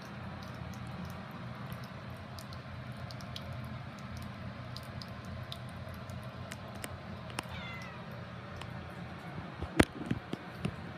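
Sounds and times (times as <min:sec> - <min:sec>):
cat meowing: 0:07.4 - 0:08.2.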